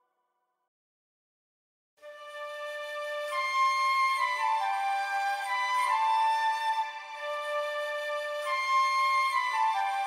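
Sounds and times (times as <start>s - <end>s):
slow flute-like melody: 2.0s - 10.0s.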